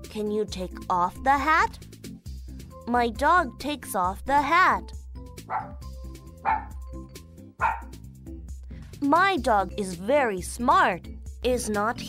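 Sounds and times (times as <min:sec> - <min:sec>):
light background music: 0:00.0 - 0:12.0
dog barks: 0:05.5 - 0:05.8, 0:06.4 - 0:06.8, 0:07.6 - 0:08.0.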